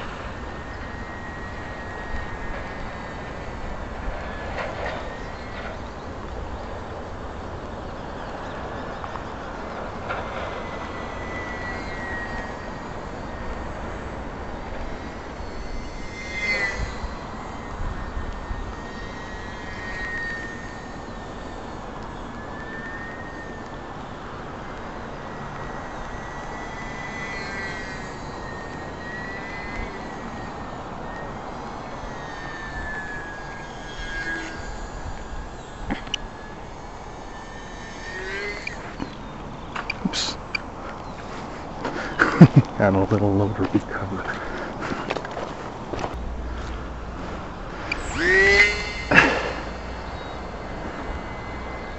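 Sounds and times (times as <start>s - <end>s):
electric model airplane motor whine: 0.0s - 51.9s.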